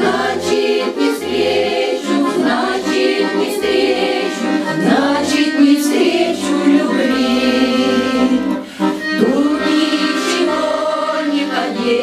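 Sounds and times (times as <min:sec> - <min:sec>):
women's choir singing: 0:00.0 - 0:08.5, 0:09.2 - 0:12.0
accordion: 0:00.0 - 0:12.0.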